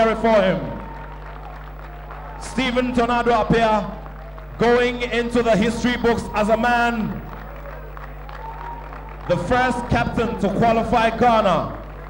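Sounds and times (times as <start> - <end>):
audience applauding: 0.0 - 12.0
steady low hum: 0.0 - 12.0.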